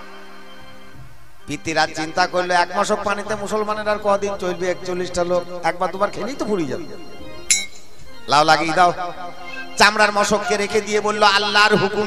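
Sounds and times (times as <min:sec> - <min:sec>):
bright metallic clink: 0:07.5 - 0:07.9.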